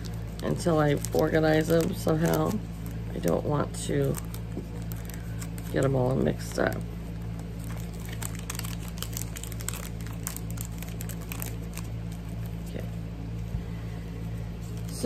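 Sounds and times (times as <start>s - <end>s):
plastic bags crinkling: 0.0s - 12.8s
steady low hum: 0.0s - 15.0s.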